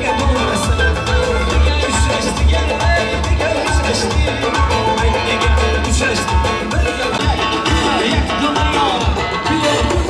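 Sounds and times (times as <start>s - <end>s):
drum kit: 0.0s - 10.0s
electric guitar: 0.0s - 10.0s
keyboard: 0.0s - 10.0s.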